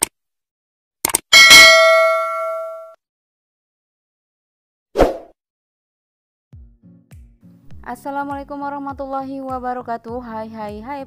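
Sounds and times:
notification bell ding: 0:01.4 - 0:03.0.

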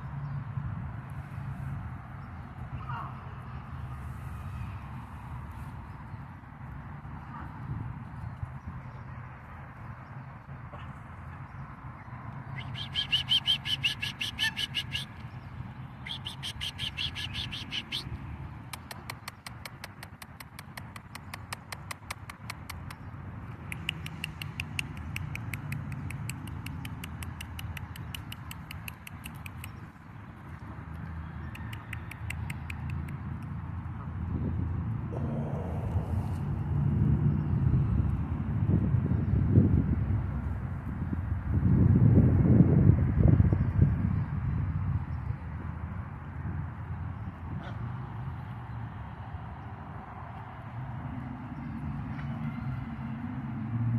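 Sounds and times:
high-pitched bird chatter: 0:12.6 - 0:15.3, 0:16.0 - 0:18.2
low rumbling noise: 0:34.8 - 0:39.2.

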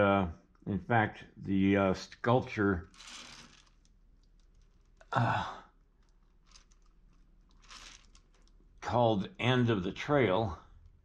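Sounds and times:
soft rustle of hands: 0:05.8 - 0:08.8.

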